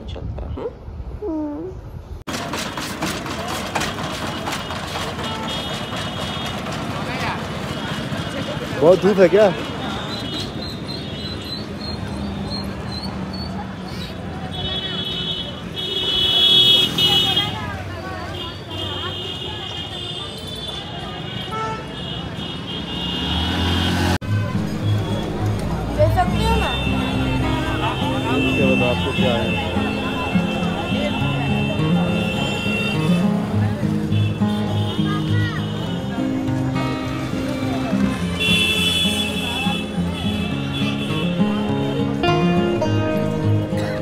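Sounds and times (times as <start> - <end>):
traffic: 0.0 - 44.0
vehicle engine approaching: 23.0 - 32.3.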